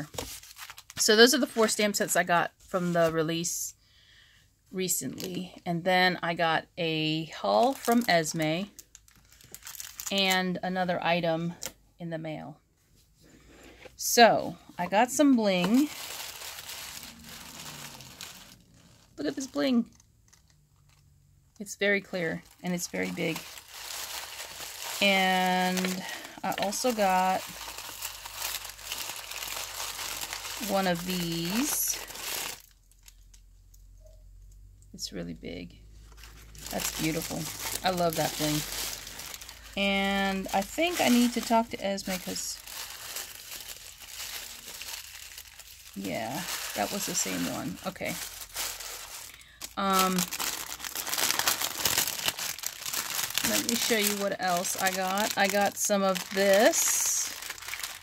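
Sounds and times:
plastic bags crinkling: 0.0s - 1.9s, 7.3s - 10.5s, 13.4s - 21.1s, 21.7s - 33.3s, 36.0s - 58.0s.

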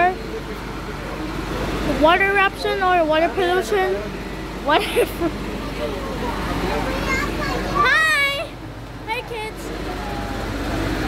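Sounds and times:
passing vehicle traffic noise: 0.0s - 11.0s.

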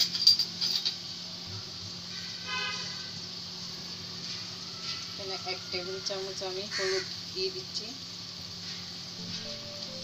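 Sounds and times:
onions sizzling in oil: 0.5s - 10.0s.

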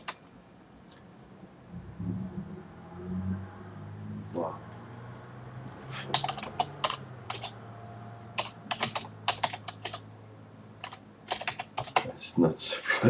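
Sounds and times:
low steady hum: 0.0s - 13.0s
keyboard key clicks: 8.4s - 10.0s.

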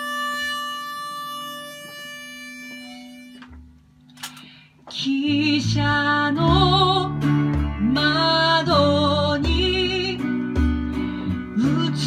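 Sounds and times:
harmonica long note: 0.0s - 3.8s
guitar plucks: 4.4s - 12.0s.

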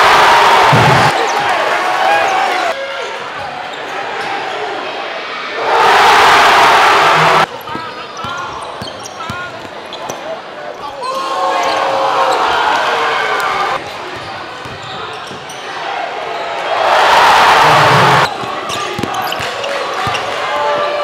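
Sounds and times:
crowd cheering: 0.0s - 7.5s, 10.9s - 13.8s, 15.7s - 21.0s.

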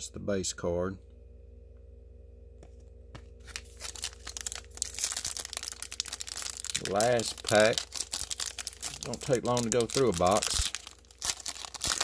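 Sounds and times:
faint steady hum: 0.0s - 12.0s
wrapper crinkling and tearing: 3.4s - 12.0s.

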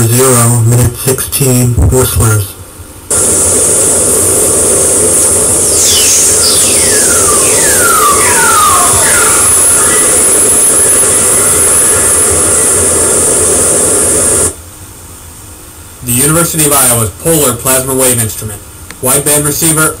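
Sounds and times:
loud steady hiss: 0.4s - 20.0s
falling whistle tones: 5.4s - 13.5s.

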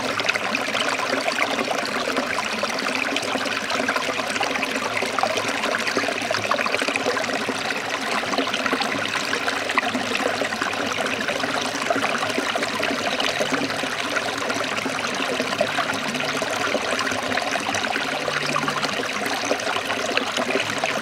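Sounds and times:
stream trickling over rocks: 0.0s - 21.0s.

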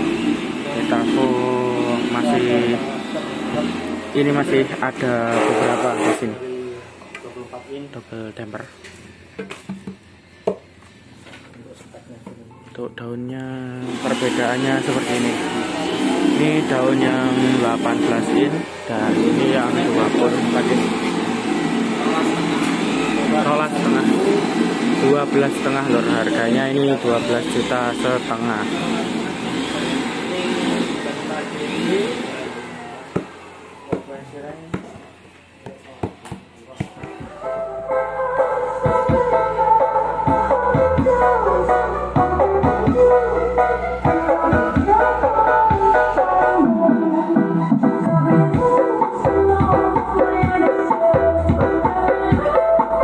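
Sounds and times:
hand knocking speaker frame: 9.4s - 10.6s, 34.7s - 37.4s.

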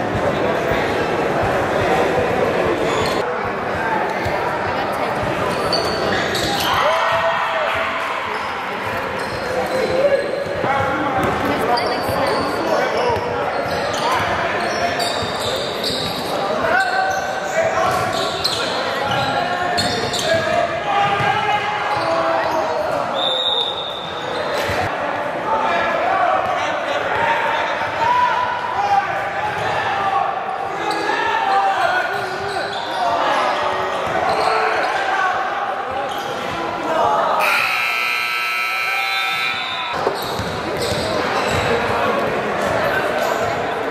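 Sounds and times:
players and spectators shouting: 5.5s - 11.1s, 24.9s - 43.2s
scoreboard horn: 37.4s - 40.0s.

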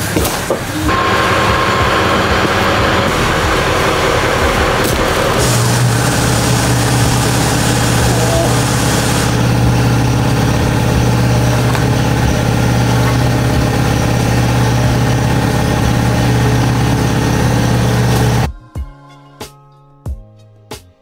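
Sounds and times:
low machine drone: 0.8s - 18.5s.

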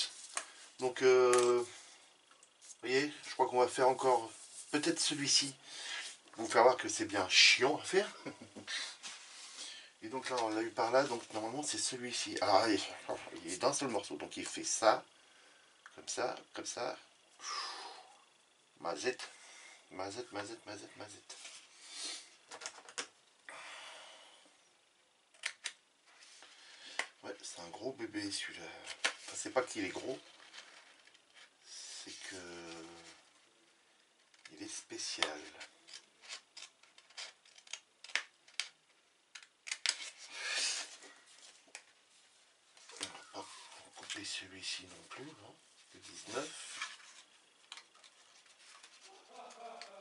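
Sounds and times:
faint voice murmuring: 49.1s - 50.0s.

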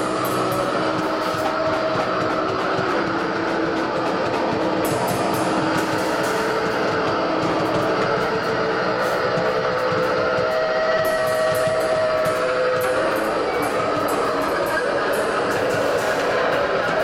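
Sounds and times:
drums: 0.0s - 17.0s.

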